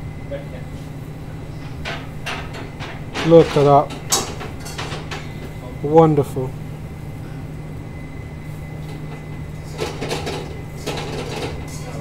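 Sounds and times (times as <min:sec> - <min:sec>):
kitchen equipment humming: 0:00.0 - 0:12.0.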